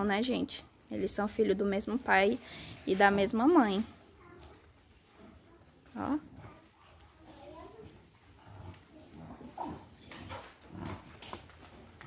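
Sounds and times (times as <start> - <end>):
puppies vocalizing: 6.4 - 11.5.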